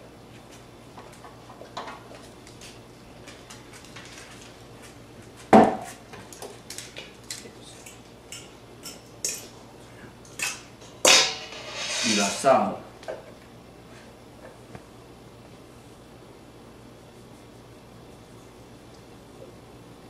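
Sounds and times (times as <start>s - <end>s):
fork scraping against bowl: 11.4s - 12.5s.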